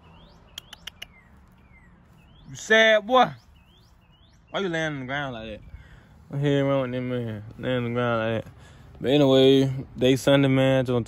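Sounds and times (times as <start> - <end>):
birds chirping: 0.0 - 11.0
sharp clicks: 0.5 - 1.6.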